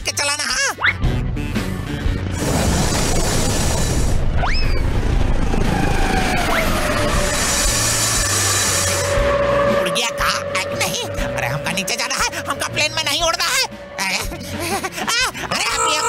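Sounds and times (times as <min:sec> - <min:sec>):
background music: 0:00.0 - 0:16.0
cartoon jet engine rush: 0:02.3 - 0:16.0.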